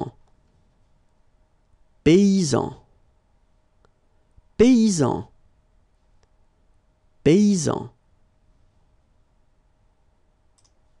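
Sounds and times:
computer mouse click: 10.5 - 10.8.

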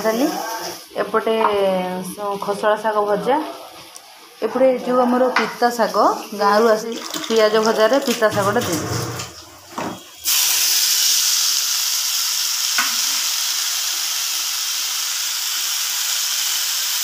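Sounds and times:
greens sizzling in hot oil: 9.9 - 17.0.

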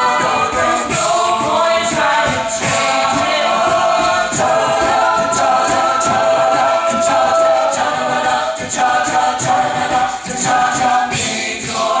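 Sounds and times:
a cappella group singing chords: 0.0 - 12.0
vocal percussion ticks: 0.0 - 12.0.

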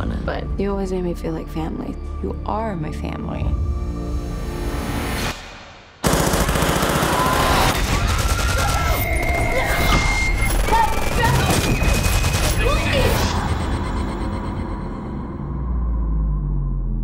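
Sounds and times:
rapid gunfire: 6.0 - 9.5, 10.2 - 13.3
people screaming: 7.0 - 13.9.

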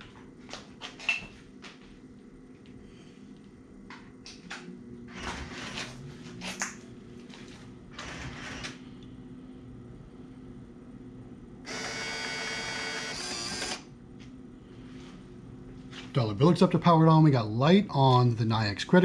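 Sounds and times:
bill acceptor motor whirring: 5.1 - 6.0, 7.9 - 8.8, 11.6 - 13.9.

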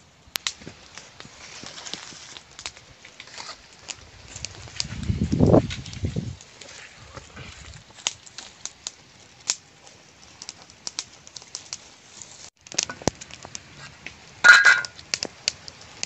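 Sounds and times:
dry leaves crackling: 0.0 - 16.0.

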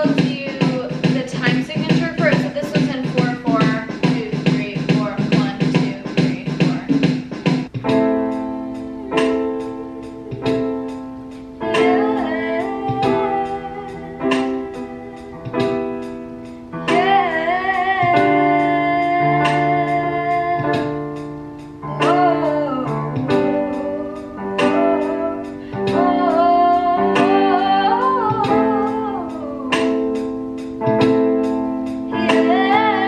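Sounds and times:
woman singing: 0.0 - 7.0, 11.6 - 15.8, 16.8 - 21.2, 21.8 - 30.2, 32.1 - 33.0
digital piano chords: 0.0 - 33.0.

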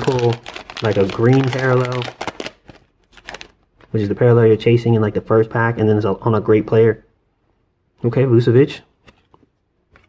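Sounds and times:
trading cards and foil wrapper rustling: 0.0 - 3.9.

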